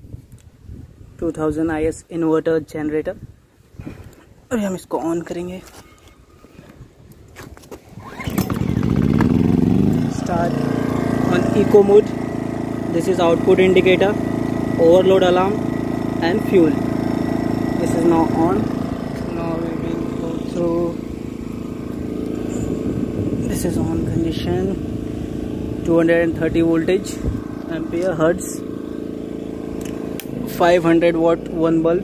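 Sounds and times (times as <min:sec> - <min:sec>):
small petrol engine running: 0:08.0 - 0:32.0.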